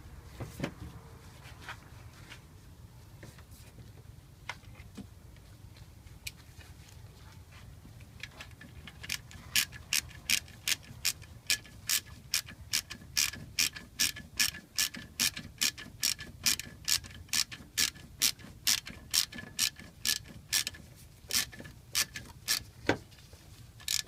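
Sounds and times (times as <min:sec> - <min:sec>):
ratchet wrench clicking: 0:09.0 - 0:22.7, 0:23.8 - 0:24.0.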